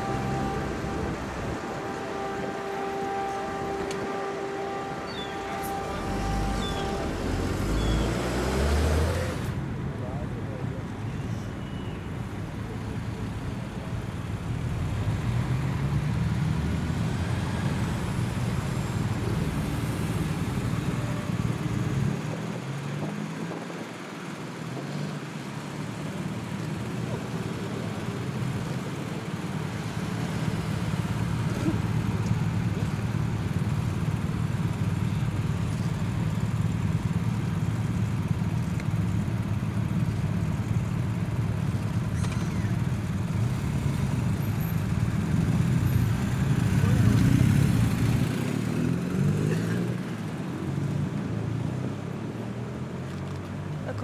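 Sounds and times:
motorcycles passing at low revs: 0.0s - 11.5s, 12.4s - 54.0s.

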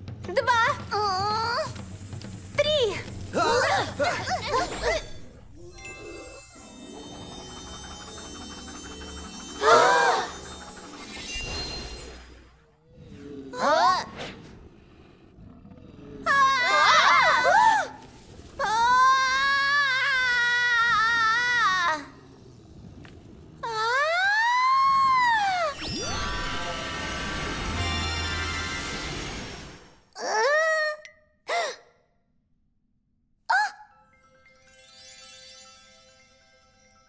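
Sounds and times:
swooping gliding tones: 2.8s - 12.8s
cartoon music: 4.4s - 12.3s, 25.7s - 29.4s
shimmering chord: 5.7s - 12.6s, 25.8s - 30.0s.

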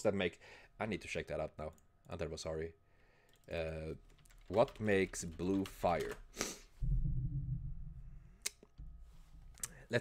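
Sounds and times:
low muffled hum: 6.7s - 10.0s.

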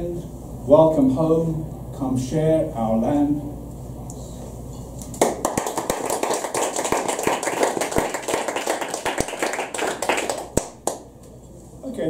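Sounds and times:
audience applauding: 5.2s - 11.0s.

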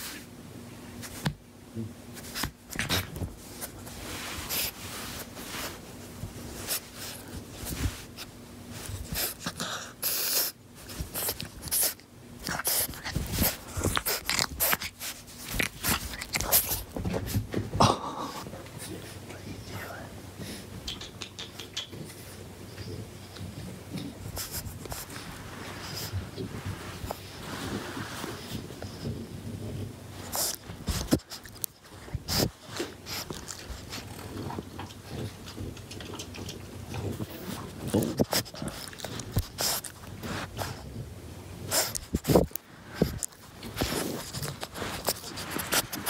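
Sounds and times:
puppy breathing and snuffling: 2.1s - 46.0s.

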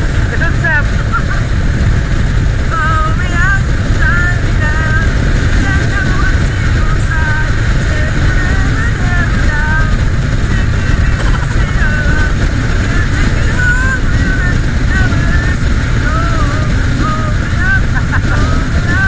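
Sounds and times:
wind rumbling over microphone: 0.0s - 19.0s.

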